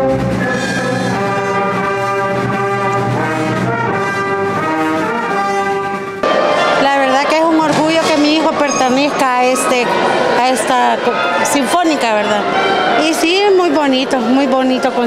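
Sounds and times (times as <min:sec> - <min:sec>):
orchestra playing brass chords: 0:00.0 - 0:15.0
woman speaking in a hall: 0:06.8 - 0:15.0.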